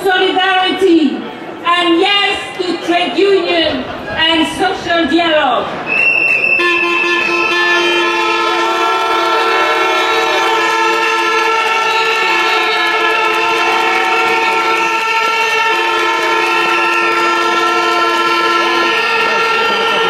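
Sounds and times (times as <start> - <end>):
chorus of horns blown: 5.9 - 20.0.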